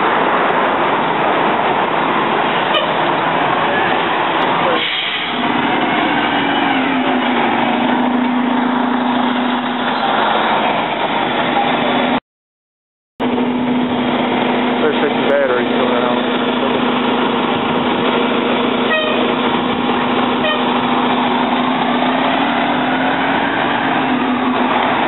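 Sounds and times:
diesel bus accelerating: 0.0 - 12.2, 13.2 - 25.0
traffic noise: 0.0 - 12.2, 13.2 - 25.0.

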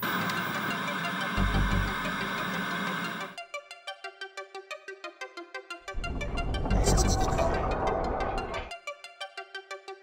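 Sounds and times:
tv static hiss: 0.0 - 3.3
low rumble: 5.9 - 8.7.

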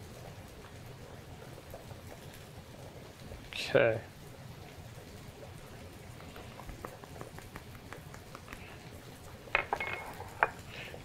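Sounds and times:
onions sizzling in a pot: 0.0 - 11.0
sharp clicks and taps: 6.2 - 8.7.

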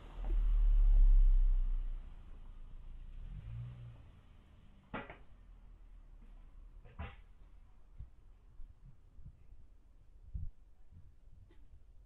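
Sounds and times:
car engine moving away: 0.0 - 7.7
low hum: 0.0 - 12.0.

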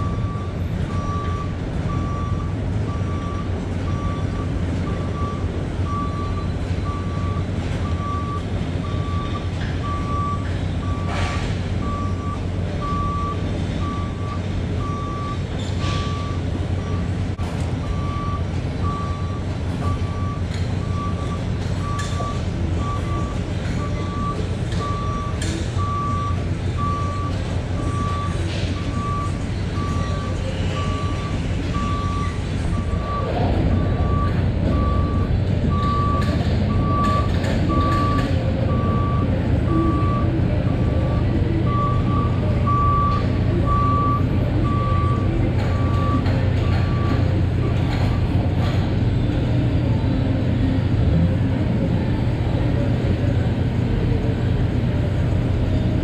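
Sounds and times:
diesel engine hum: 0.0 - 56.0
truck backup alarm beeping: 0.0 - 56.0.

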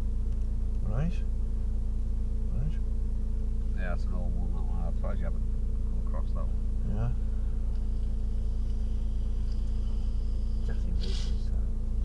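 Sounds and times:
car engine drone: 0.0 - 12.0
road noise inside car: 0.0 - 12.0
faint high whine: 3.6 - 12.0.

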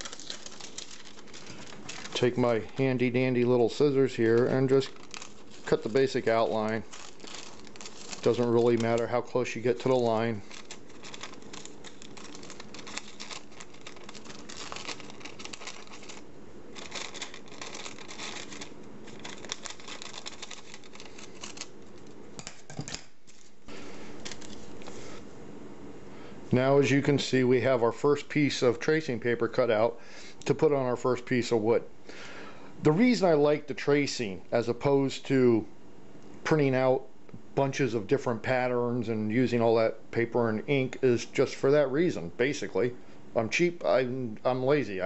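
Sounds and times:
tape peeling off paper: 0.0 - 3.1, 4.2 - 23.6
scissors snipping paper: 16.8 - 23.5.

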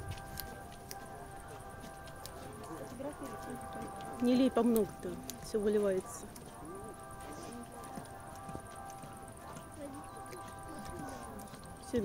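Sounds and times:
lion lapping water: 0.0 - 12.0.

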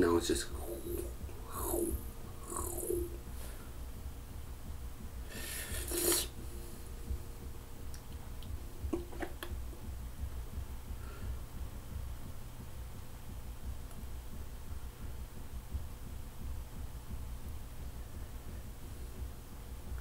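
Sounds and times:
steady low hum: 0.0 - 20.0
mouth clicks: 0.6 - 3.2, 5.8 - 6.4
hissing breath: 0.6 - 3.7, 5.2 - 6.4
man breathing hard through mouth: 5.2 - 6.4.

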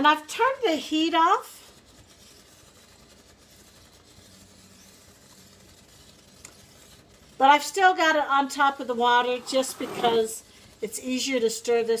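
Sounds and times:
spatula stirring in saucepan: 0.0 - 12.0.

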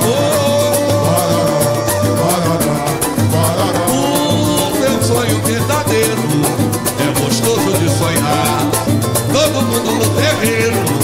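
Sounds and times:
cavaquinho and acoustic guitars: 0.0 - 11.0
man singing: 0.0 - 11.0
samba hand drums: 0.0 - 11.0.

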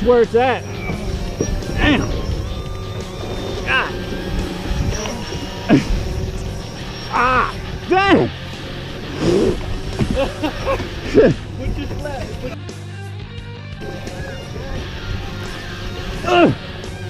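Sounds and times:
background music: 0.0 - 17.0
men whooping: 0.4 - 12.5, 13.8 - 17.0.

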